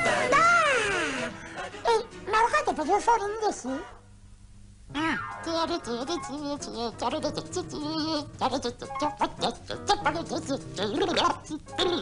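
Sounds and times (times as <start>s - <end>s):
light music: 0.0s - 3.6s, 4.9s - 12.0s
cartoon gibberish grumbling voice: 4.9s - 12.0s.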